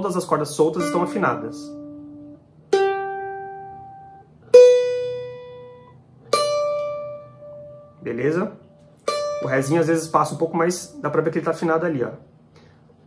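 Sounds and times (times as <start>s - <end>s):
plucked string notes: 0.0s - 11.3s.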